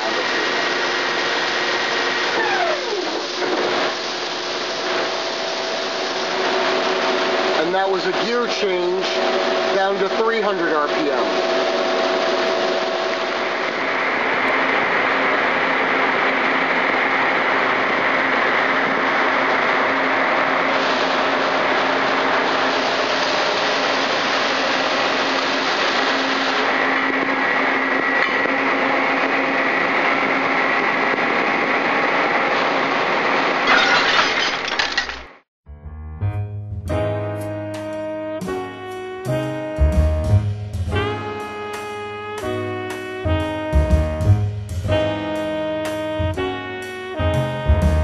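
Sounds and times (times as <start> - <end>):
lathe spindle whirring: 0.0 - 33.6.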